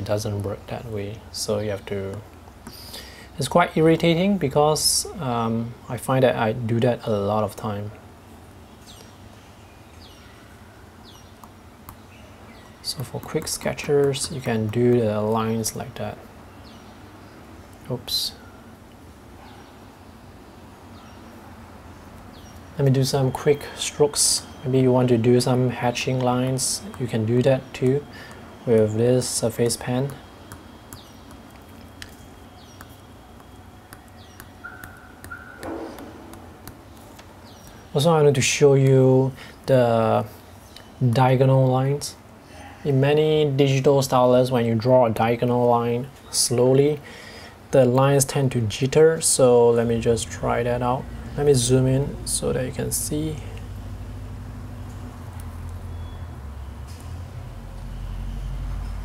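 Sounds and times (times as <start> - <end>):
low room hum: 0.0 - 59.0
stylus tapping glass screen: 29.6 - 37.7
faint high chirps: 30.1 - 36.5, 55.7 - 57.1.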